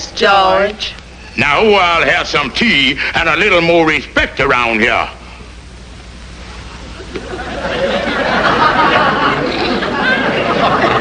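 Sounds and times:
studio audience laughing: 6.8s - 11.0s.

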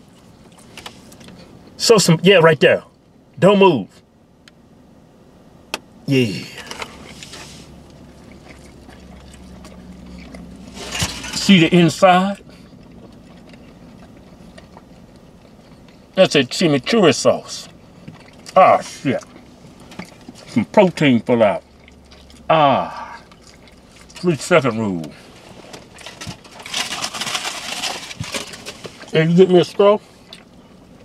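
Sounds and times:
low steady car cabin hum: 0.0s - 31.0s
wet chewing mouth sounds: 6.6s - 16.2s, 17.6s - 24.2s, 30.1s - 31.0s
wrapper rustling: 25.8s - 29.1s.

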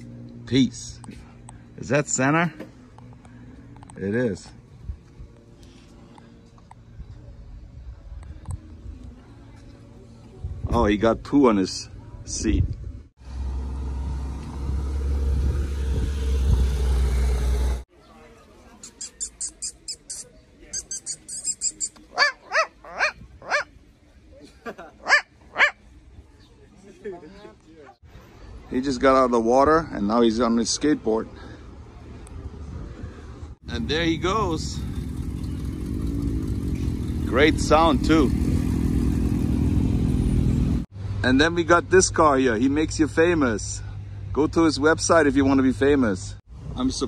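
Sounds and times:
car engine pulling away: 13.2s - 17.9s, 33.6s - 40.9s
high squeaks: 18.8s - 23.6s
puppies yipping: 18.9s - 23.7s, 25.0s - 25.8s.

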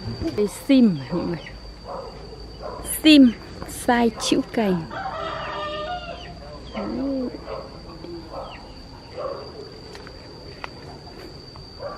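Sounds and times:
chickens calling: 4.1s - 9.7s
small birds chirping: 6.1s - 9.8s.

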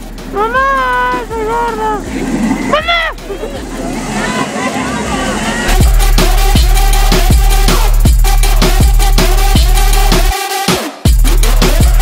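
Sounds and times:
steady noisy din: 0.0s - 10.3s
person's high-pitched cry: 2.7s - 3.2s.

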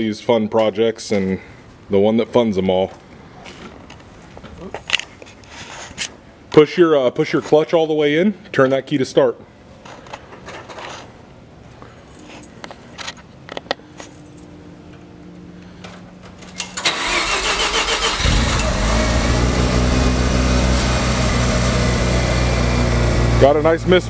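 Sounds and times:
starter cranking engine: 16.8s - 23.0s
rotary engine idling with misfire: 16.8s - 24.0s.

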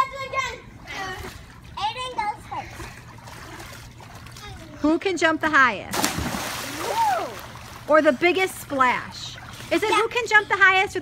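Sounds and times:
water splashing in a pool: 0.8s - 4.8s, 5.7s - 11.0s.

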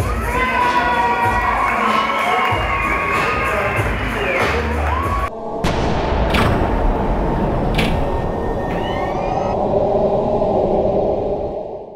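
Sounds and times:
loud low drone: 5.3s - 11.9s.

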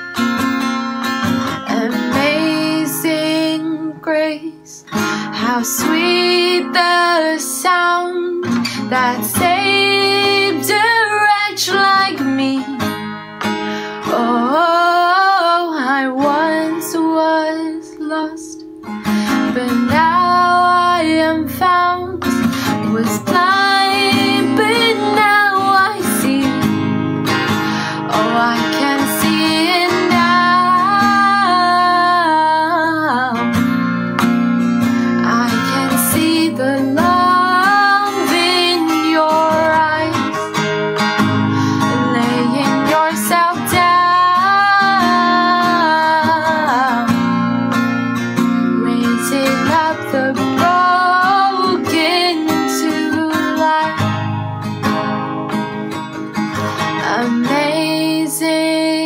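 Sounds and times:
strummed acoustic guitar: 0.0s - 59.0s
woman singing: 1.4s - 13.1s, 13.9s - 33.8s, 34.9s - 54.4s, 56.7s - 59.0s.

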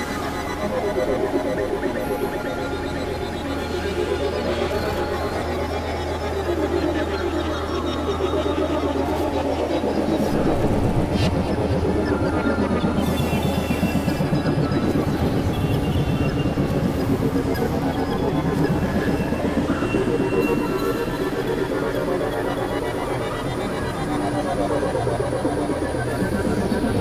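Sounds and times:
fluttering noisy synth texture: 0.0s - 27.0s
low synth drone: 0.0s - 27.0s.

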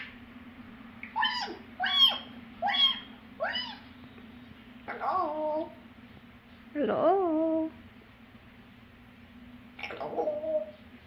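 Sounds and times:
parrot calls: 1.0s - 3.9s, 4.8s - 5.8s, 9.8s - 10.8s.

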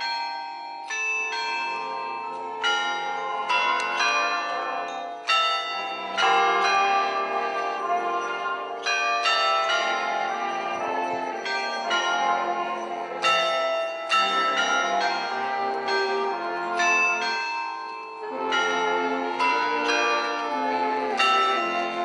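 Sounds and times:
church bells pealing: 0.0s - 22.0s.

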